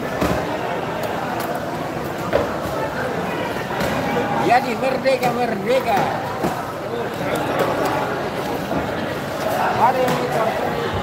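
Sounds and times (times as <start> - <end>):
voices and market hubbub: 0.0 - 11.0.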